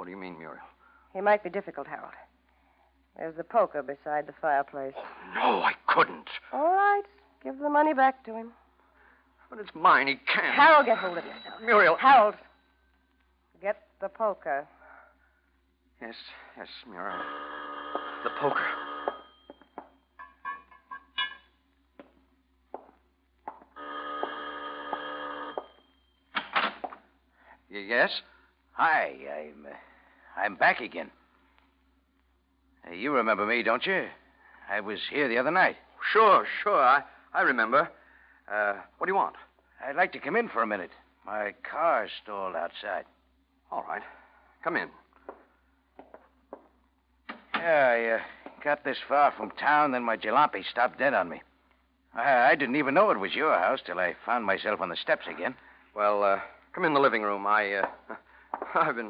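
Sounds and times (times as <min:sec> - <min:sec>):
low steady hum: 0:00.0 - 0:59.0
doorbell ringing: 0:10.6 - 0:12.5, 0:17.2 - 0:21.4, 0:23.8 - 0:26.2
faint footsteps: 0:19.0 - 0:25.9, 0:45.1 - 0:47.5, 0:48.3 - 0:48.7.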